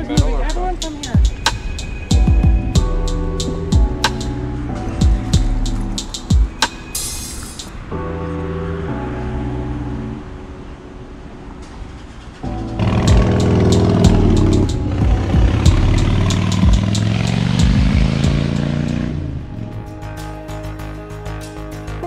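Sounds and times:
background music: 0.0 - 22.0
vehicle engine running: 12.6 - 19.9.

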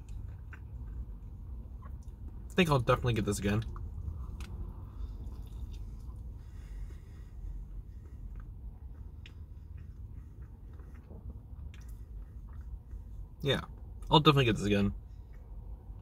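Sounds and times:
wet chewing: 0.0 - 2.5, 3.6 - 14.0
steady low hum: 0.0 - 16.0.

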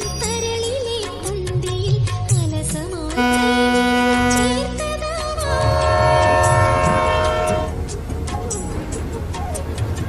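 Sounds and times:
train rumble: 1.0 - 10.0
train horn: 3.2 - 7.9.

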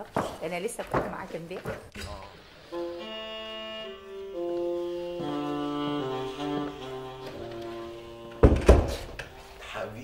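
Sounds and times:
soft background music: 2.7 - 10.0
door shutting with heavy thuds: 8.3 - 9.2.

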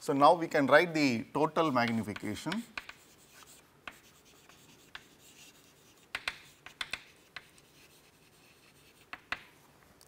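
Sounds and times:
chalk tapping on board: 1.8 - 9.6
chalk scratching on chalkboard: 1.9 - 9.5.

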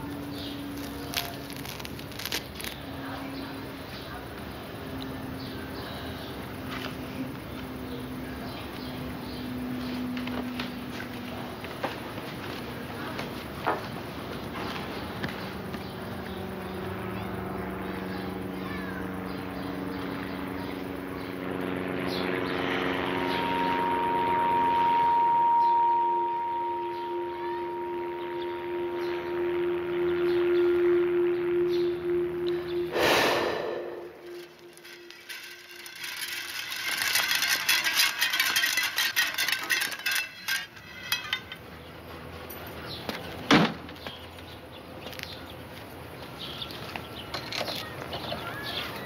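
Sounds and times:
sustained musical tones: 22.8 - 36.3
sudden whoosh: 32.7 - 34.8.

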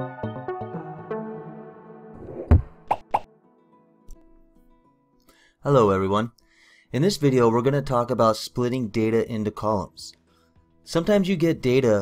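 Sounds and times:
short pop: 2.4 - 3.3.

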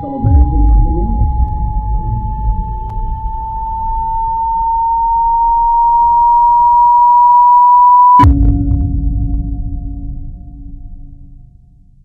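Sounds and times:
faint low rumble: 0.0 - 6.8, 8.2 - 12.0
electronic tone rising in pitch: 0.0 - 8.3.

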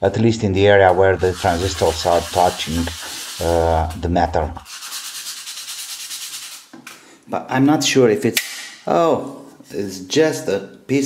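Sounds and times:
sandpaper rubbing on metal: 0.9 - 6.7.

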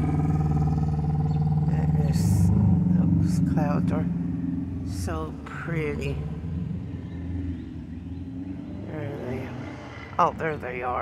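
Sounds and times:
faint hum: 0.0 - 11.0
steady low rumble: 0.0 - 11.0.

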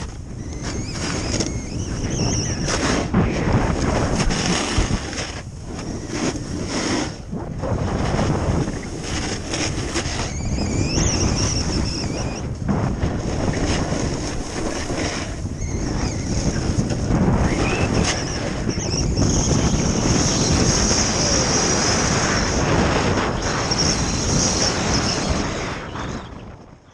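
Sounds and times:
skis sliding over snow: 0.0 - 26.2
wind rushing over microphone: 0.0 - 26.9.

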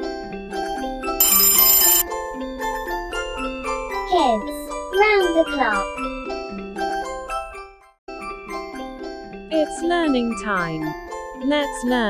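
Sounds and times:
alarm clock bell ringing: 1.2 - 2.0.

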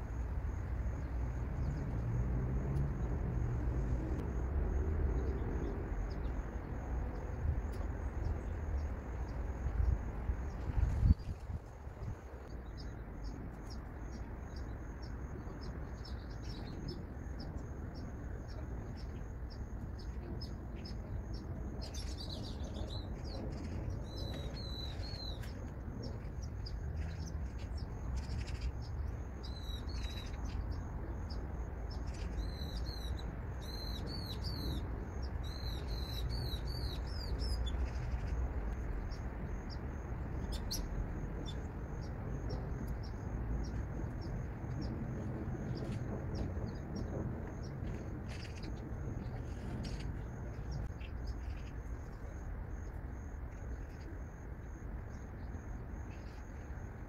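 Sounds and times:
songbird singing: 0.0 - 57.0
steady low rumble: 0.0 - 57.0
bird chirps: 18.3 - 38.5.

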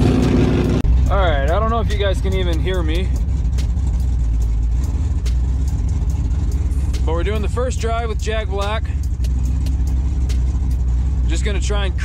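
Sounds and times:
truck engine rumbling: 0.0 - 12.0
sharp clicks: 9.0 - 10.4.

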